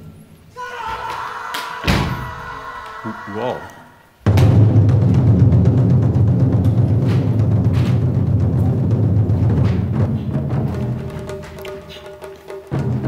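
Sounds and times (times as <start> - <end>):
music with rolling drum rumble: 4.3 - 13.0.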